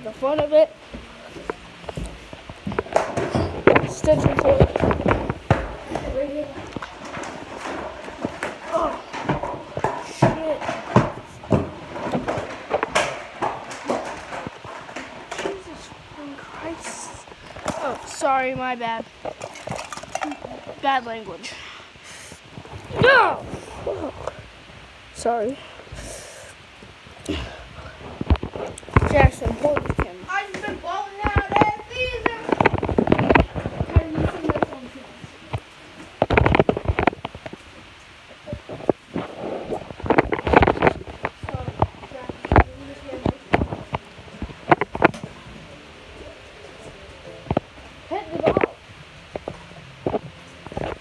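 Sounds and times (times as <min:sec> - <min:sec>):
knocks and thumps: 0:00.3 - 0:21.0, 0:28.0 - 0:37.6, 0:38.4 - 0:45.5.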